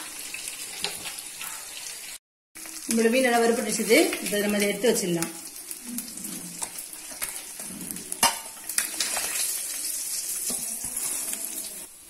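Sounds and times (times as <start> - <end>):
fish sizzling in oil: 0.0 - 12.0
metal spatula scraping pan: 5.9 - 11.6.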